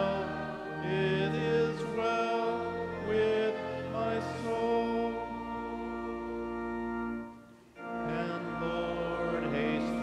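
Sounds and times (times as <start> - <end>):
organ playing hymn chords: 0.0 - 10.0.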